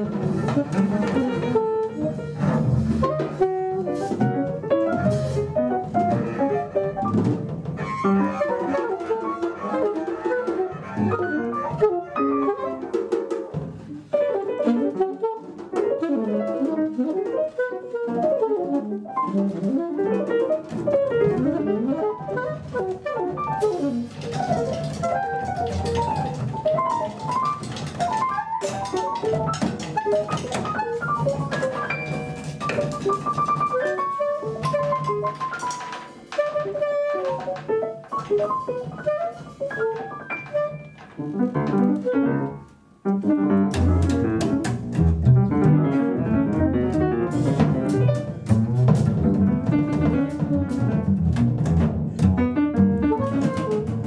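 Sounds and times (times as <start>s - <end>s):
alto saxophone: 0.0s - 4.7s, 14.2s - 26.5s
double bass: 0.0s - 13.2s, 13.8s - 35.5s, 38.3s - 54.0s
piano: 0.0s - 54.0s.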